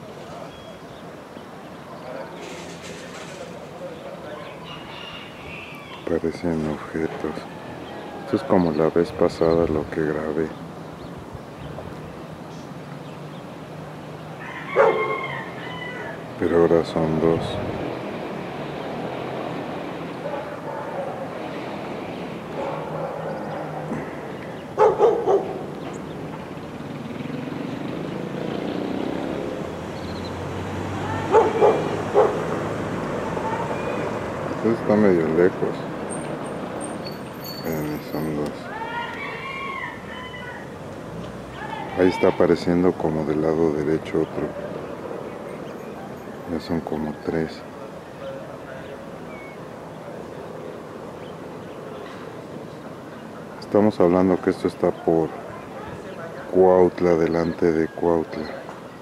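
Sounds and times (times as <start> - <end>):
animal call: 14.4 - 16.3, 31.0 - 32.6, 37.0 - 40.8.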